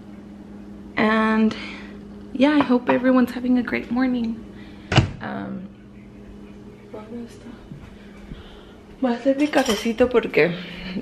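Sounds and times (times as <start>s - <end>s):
woman talking: 1.0s - 4.4s, 5.2s - 5.8s, 6.8s - 7.8s, 9.0s - 11.0s
cutlery and dishes clinking: 9.4s - 10.1s.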